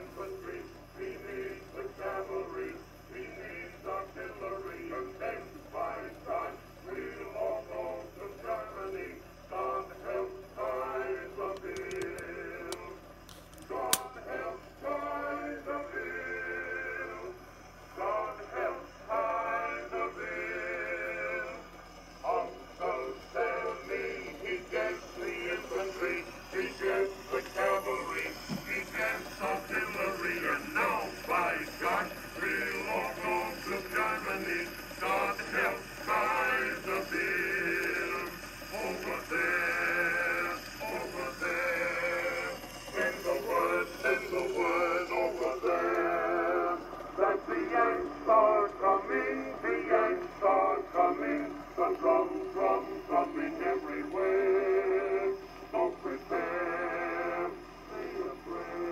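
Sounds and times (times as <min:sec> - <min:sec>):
male chorus singing on old record: 0:00.0 - 0:58.9.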